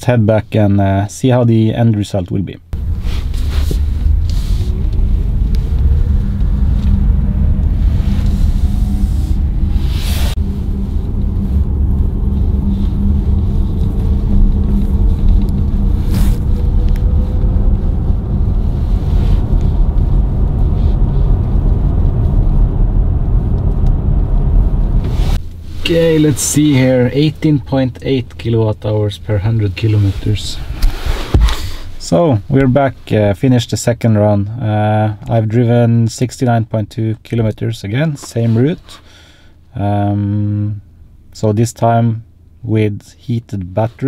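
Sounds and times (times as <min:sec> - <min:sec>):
tyre and road rumble: 0:02.7 - 0:33.3.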